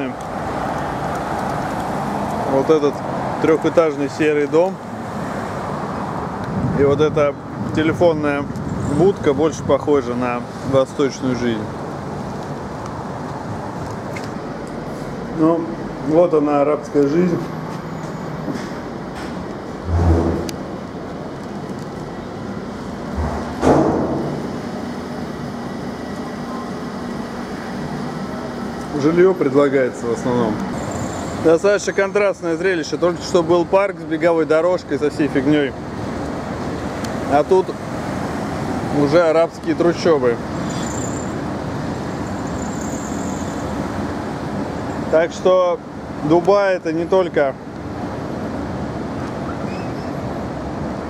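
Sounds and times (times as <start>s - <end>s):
car driving past: 19.7s - 20.8s
low thumps and rushes of noise: 19.7s - 21.1s.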